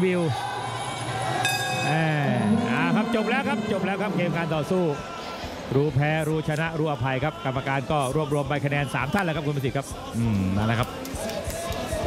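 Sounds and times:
bell ringing: 1.4s - 3.9s.

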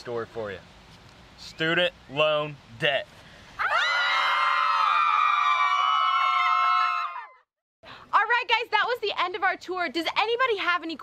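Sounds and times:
young women screaming: 3.6s - 7.4s.

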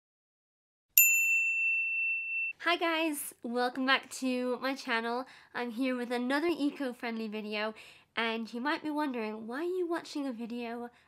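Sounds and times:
high bell-like ding: 1.0s - 2.6s.

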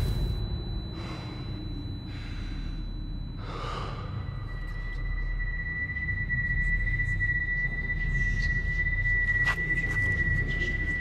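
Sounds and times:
low steady rumble: 0.0s - 11.0s
man breathing hard: 0.9s - 4.9s.

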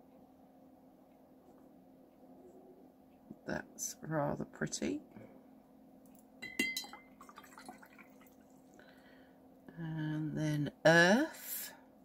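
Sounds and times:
brush clinking against glass: 6.4s - 7.4s
small water sounds: 6.8s - 8.9s.

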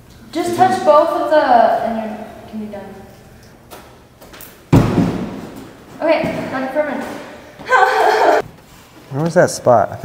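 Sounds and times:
heavy thud of landing: 4.7s - 6.6s.

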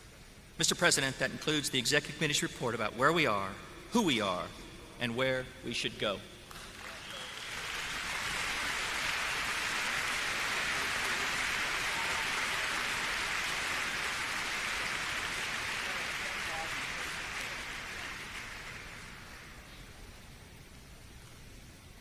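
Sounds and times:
audience applauding: 6.5s - 19.7s.

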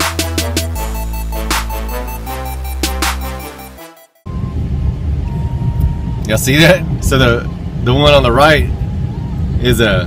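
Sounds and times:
background music: 0.0s - 4.3s.

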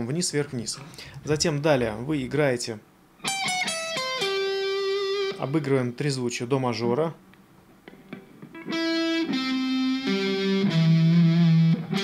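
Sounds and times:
electric guitar melody: 3.2s - 5.7s, 7.8s - 12.0s.

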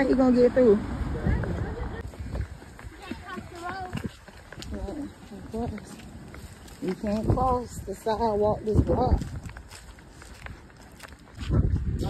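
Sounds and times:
footsteps on sidewalk: 0.0s - 12.0s
wind buffeting microphone: 0.0s - 12.0s.

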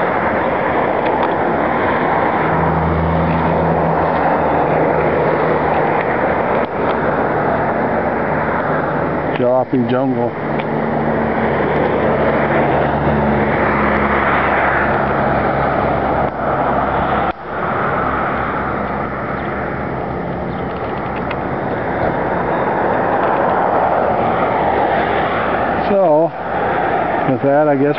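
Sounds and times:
cars passing: 0.0s - 27.9s
low engine hum: 0.0s - 27.9s.

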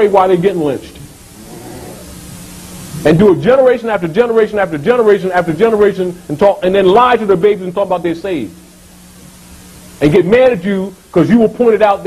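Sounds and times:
faint low hum: 0.0s - 12.0s
steady background hiss: 0.0s - 12.0s.

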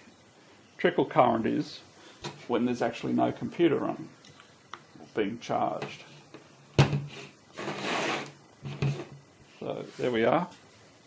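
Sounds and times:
cable scraping across tabletop: 7.1s - 9.2s.

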